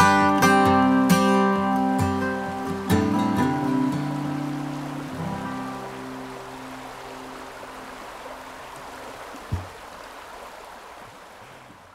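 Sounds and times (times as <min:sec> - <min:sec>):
acoustic guitar chord ringing: 0:00.0 - 0:07.5
river rushing: 0:00.0 - 0:11.9.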